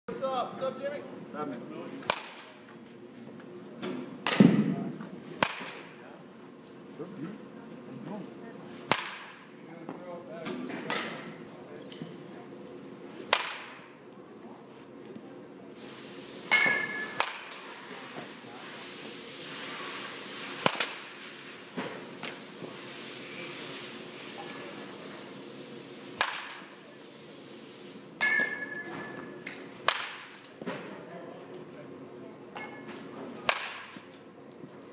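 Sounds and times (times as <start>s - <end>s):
baseball bat hitting ball: 2.0s - 2.5s, 3.9s - 5.9s, 8.9s - 9.4s, 13.3s - 13.8s, 16.5s - 17.6s, 20.6s - 21.1s, 26.2s - 26.7s, 28.2s - 30.4s, 32.6s - 34.1s
ringing metallic ping: 28.2s - 29.2s.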